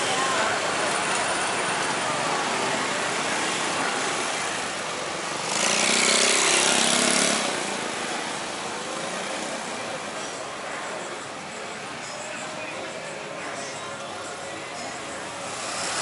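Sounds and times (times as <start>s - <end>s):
street traffic: 0.0s - 16.0s
motor scooter passing: 1.8s - 8.4s.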